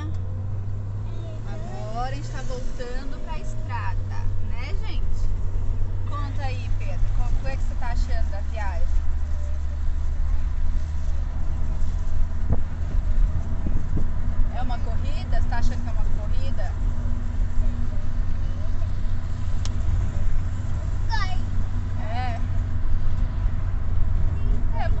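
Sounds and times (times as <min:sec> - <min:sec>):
car cabin road rumble: 0:00.0 - 0:25.0
child's voice: 0:01.0 - 0:01.7, 0:21.0 - 0:21.5.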